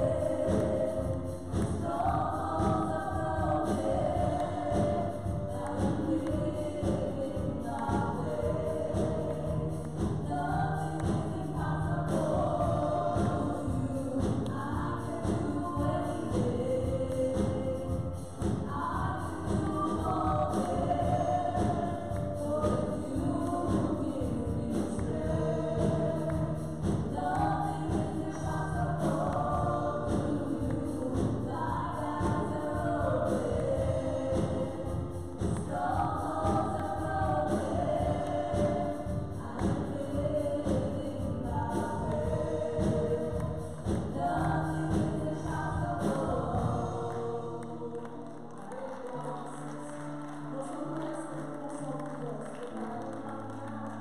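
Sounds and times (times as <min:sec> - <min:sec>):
band with drums and keyboard: 0:00.0 - 0:49.0
women singing gospel: 0:00.0 - 0:54.0.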